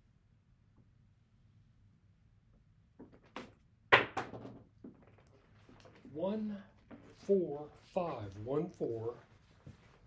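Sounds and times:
dice knocking on table: 3.0 - 5.0.

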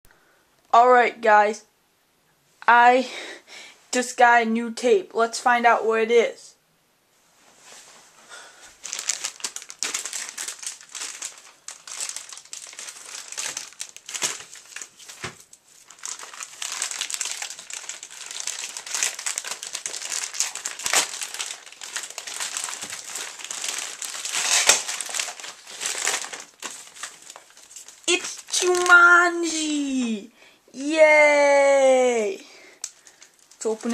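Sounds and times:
envelope crinkling and rustling: 8.8 - 30.2, 32.8 - 33.9.

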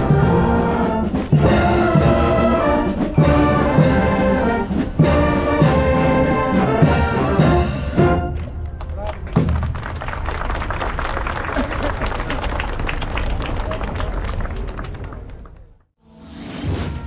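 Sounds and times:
crowd applause: 8.3 - 15.9.

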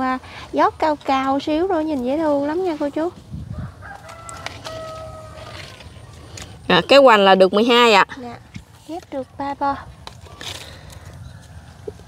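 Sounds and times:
rooster crowing: 3.5 - 5.7.

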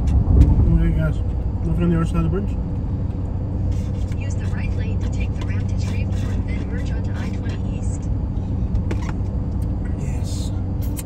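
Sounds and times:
car cabin road hum: 0.0 - 11.0.

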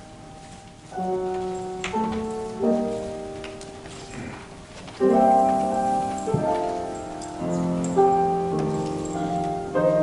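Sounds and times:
piano playing soft chords: 0.0 - 10.0.

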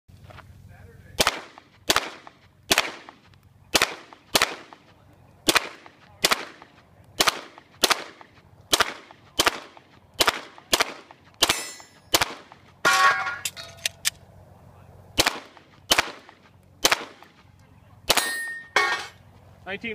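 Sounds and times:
pistol shots: 1.2 - 12.6, 15.2 - 17.3, 18.1 - 18.4.

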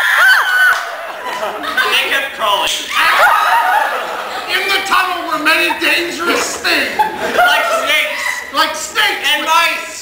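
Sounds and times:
voices: 0.4 - 10.0
laughter: 0.7 - 2.1, 3.6 - 4.6, 5.6 - 8.5.

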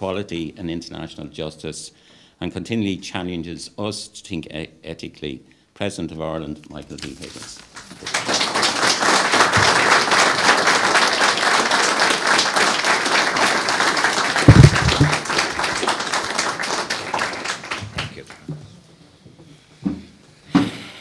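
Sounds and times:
audience applauding: 7.6 - 18.4.

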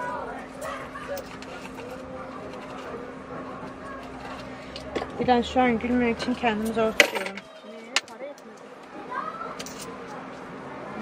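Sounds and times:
muffled voices: 0.0 - 5.4.

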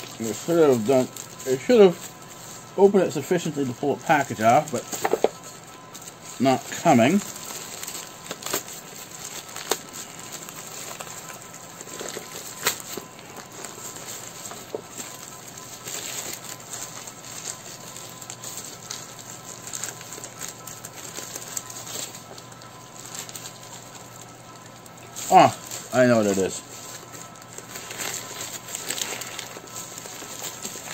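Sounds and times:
cardboard packaging rustling: 0.0 - 30.9.

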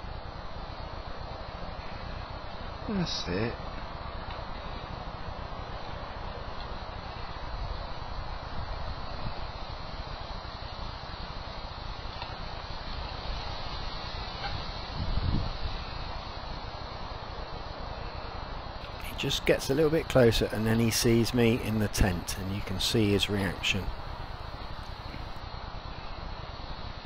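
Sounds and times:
outdoor background hiss: 0.0 - 27.0.

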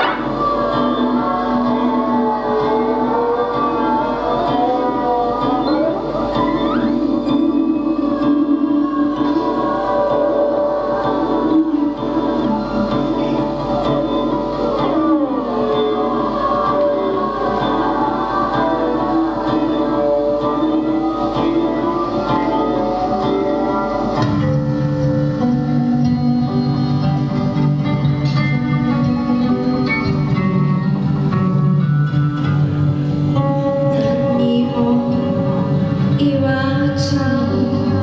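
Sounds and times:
choir-like sound: 0.0 - 31.2, 33.4 - 38.0
experimental electronic music: 0.0 - 38.0.

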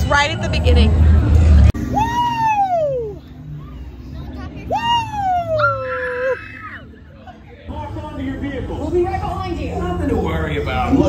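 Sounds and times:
people chattering: 0.0 - 11.0
roller coaster rider whooping: 1.8 - 7.0.

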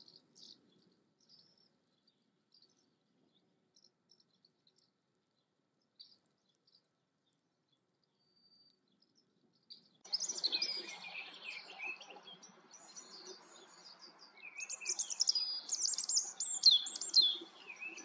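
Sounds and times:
songbirds singing: 0.0 - 18.0.

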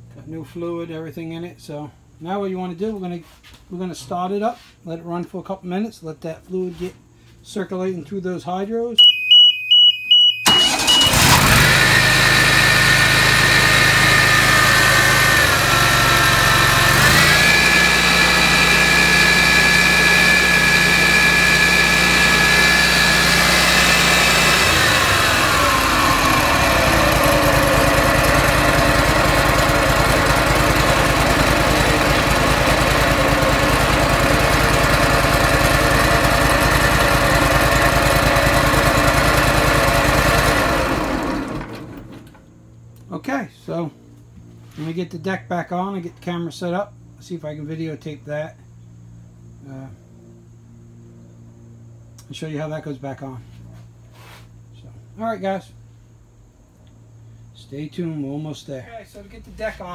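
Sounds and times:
mower engine starting and running: 10.4 - 42.5.

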